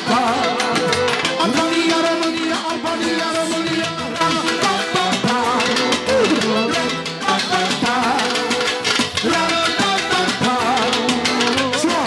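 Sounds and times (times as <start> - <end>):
live band music with fast beat: 0.0 - 12.0
ornamented melody with bending notes: 0.0 - 12.0.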